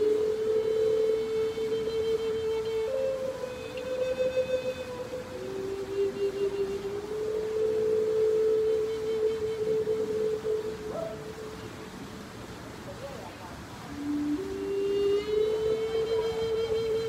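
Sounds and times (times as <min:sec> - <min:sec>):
flute playing long held notes: 0:00.0 - 0:12.5, 0:13.1 - 0:17.0.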